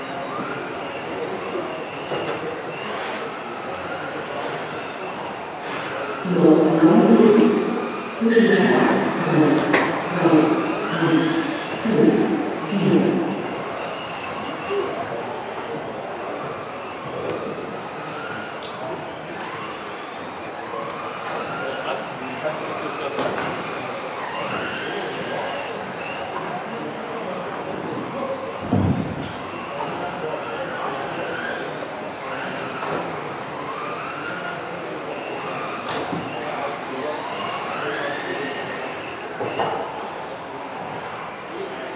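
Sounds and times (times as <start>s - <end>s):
electric toy car motors whining: 0.0s - 41.9s
thump: 28.6s - 29.2s.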